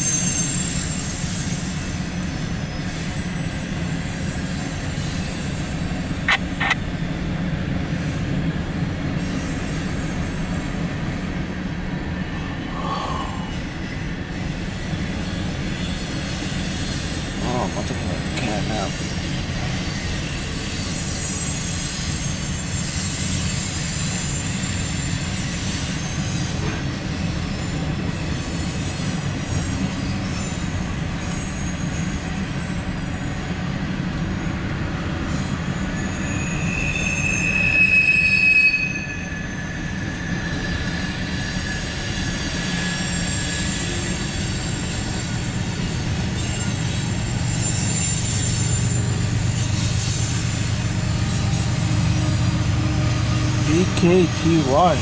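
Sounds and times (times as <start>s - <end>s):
freight train rumbling: 0.0s - 55.0s
train wheels squealing: 0.0s - 55.0s.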